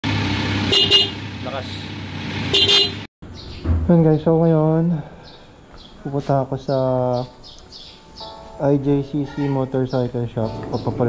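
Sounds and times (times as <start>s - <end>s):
motorcycle horn honk: 0.6s - 1.3s, 2.5s - 3.1s.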